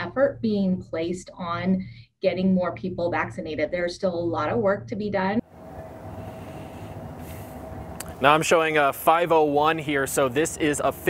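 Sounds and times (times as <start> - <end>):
faint steady hum: 5.4 - 11.0
low outdoor rumble: 5.4 - 11.0.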